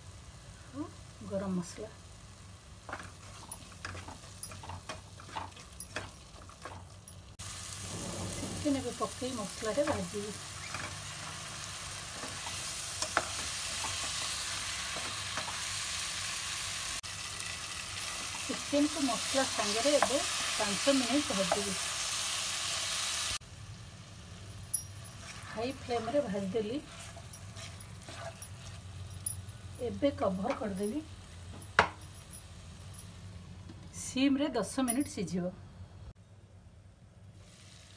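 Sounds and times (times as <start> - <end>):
faint sizzle of frying: 0.0 - 34.1, 37.1 - 37.9
spatula scraping a pan: 2.9 - 6.8, 25.1 - 29.0.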